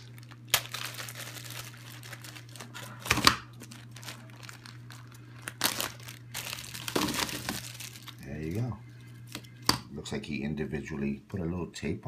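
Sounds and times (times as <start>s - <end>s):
plastic bag of coins crinkling: 0.0s - 2.7s, 3.6s - 8.2s.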